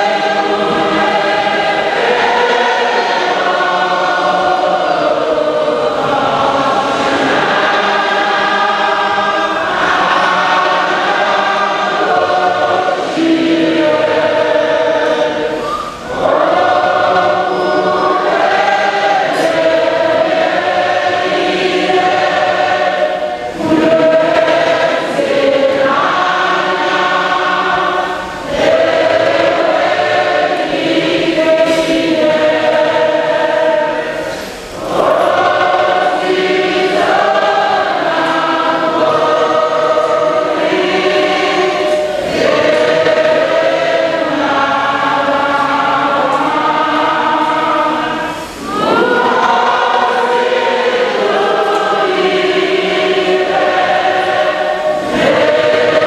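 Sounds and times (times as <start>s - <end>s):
church choir singing a hymn: 0.0s - 56.0s.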